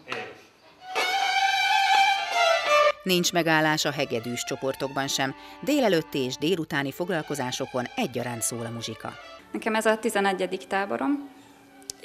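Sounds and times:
violins holding bowed notes: 0:00.8 - 0:03.2, 0:03.8 - 0:09.5.

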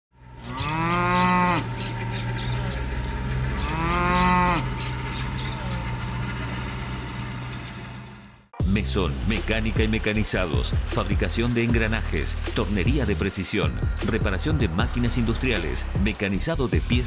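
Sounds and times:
cow mooing: 0:00.3 - 0:06.8.

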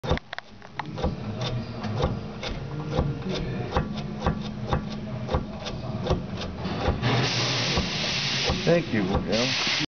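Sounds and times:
suspension clunking: 0:00.0 - 0:09.4
loud hiss: 0:07.0 - 0:09.9.

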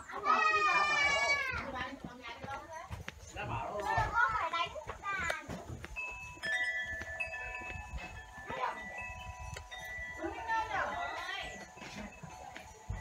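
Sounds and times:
wind chime ringing: 0:05.8 - 0:13.0.

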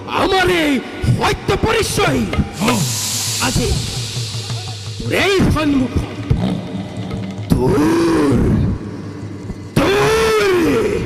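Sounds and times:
performer roaring: 0:07.5 - 0:08.8.

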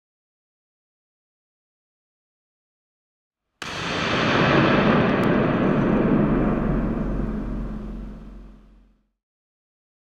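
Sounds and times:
loud rush of noise: 0:03.7 - 0:08.9.

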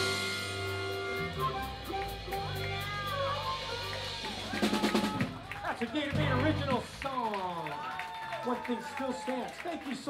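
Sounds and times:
drum hits and cymbal crashes: 0:00.0 - 0:05.6
blues band playing live: 0:00.0 - 0:07.0
man speaking into microphone: 0:05.6 - 0:07.8, 0:08.4 - 0:10.0.

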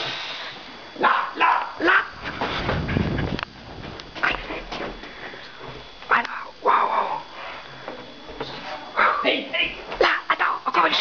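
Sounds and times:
dog barking: 0:01.0 - 0:02.1.

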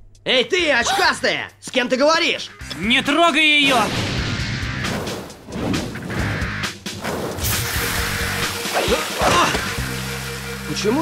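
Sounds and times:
cartoon action music: 0:02.4 - 0:11.0
fire sprinklers hissing: 0:07.4 - 0:11.0.

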